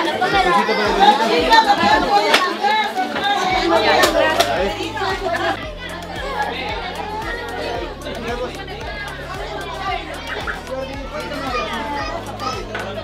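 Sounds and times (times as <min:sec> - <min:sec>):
women and children talking: 0:00.0 - 0:13.0
background music with bass line: 0:03.5 - 0:13.0.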